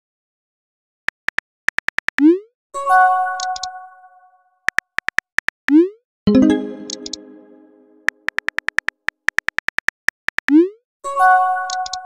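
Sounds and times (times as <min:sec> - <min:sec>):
keyboard typing ticks: 0:01.1 - 0:02.4, 0:03.4 - 0:03.7, 0:04.7 - 0:10.8, 0:11.6 - 0:12.0.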